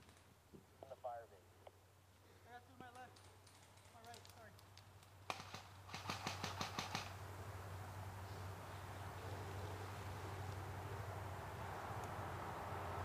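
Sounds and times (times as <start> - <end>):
airsoft guns firing: 5.3 - 7.2.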